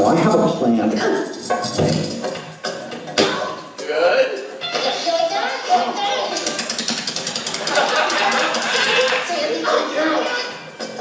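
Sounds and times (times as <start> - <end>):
film voices over speakers: 0.0 - 2.2, 3.8 - 6.8, 7.6 - 11.0
handcuffs rattling and clicking: 0.0 - 3.2, 6.4 - 9.3.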